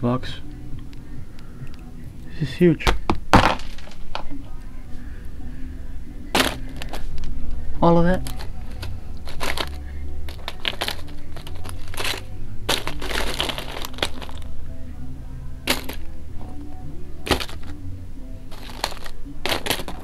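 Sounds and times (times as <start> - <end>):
background music: 0.0 - 20.0
aluminium foil crinkling: 8.2 - 14.5, 18.5 - 20.0.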